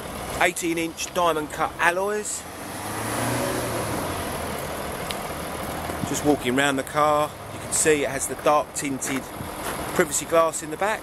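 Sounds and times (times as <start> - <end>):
motor vehicle running: 0.0 - 11.0.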